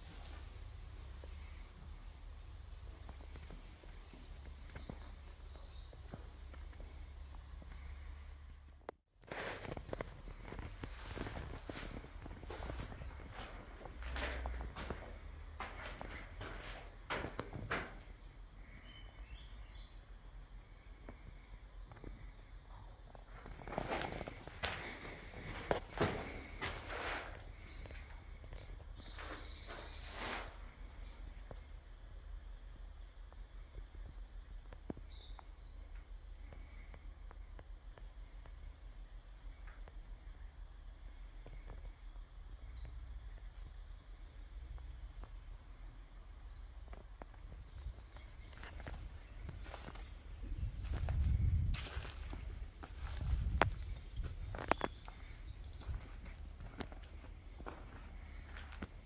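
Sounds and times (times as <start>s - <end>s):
footsteps on debris-strewn floor: 9.2s - 18.8s, 23.1s - 31.7s, 46.9s - 59.0s.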